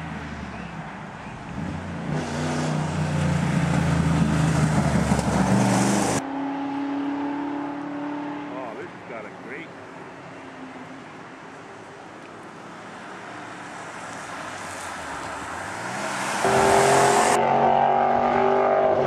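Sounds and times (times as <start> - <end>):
rally car engine accelerating: 15.8 - 19.0.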